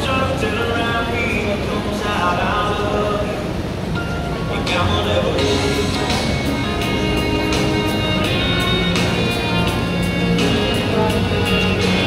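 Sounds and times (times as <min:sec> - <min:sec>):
music with steady beat: 0:05.4 - 0:12.0.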